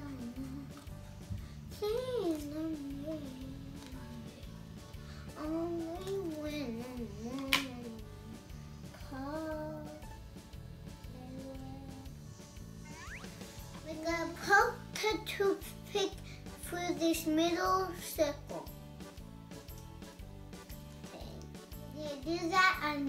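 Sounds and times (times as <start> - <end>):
girl humming: 0.0 - 1.0.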